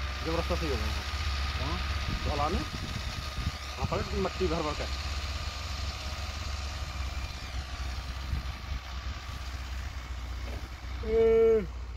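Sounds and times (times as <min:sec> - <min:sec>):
tractor diesel engine rumbling: 0:00.0 - 0:11.9.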